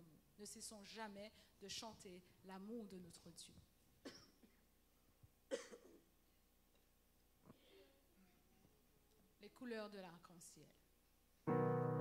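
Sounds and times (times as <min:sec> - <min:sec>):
person coughing: 0:04.0 - 0:04.7, 0:05.5 - 0:06.1.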